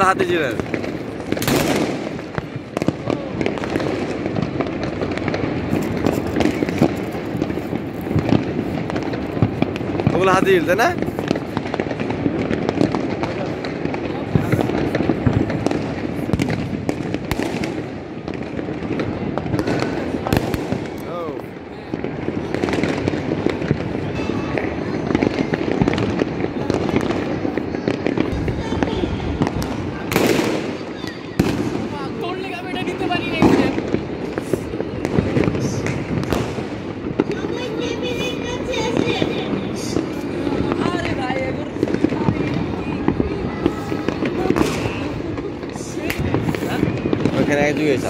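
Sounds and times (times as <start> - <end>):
fireworks and firecrackers crackling: 0.0 - 48.0.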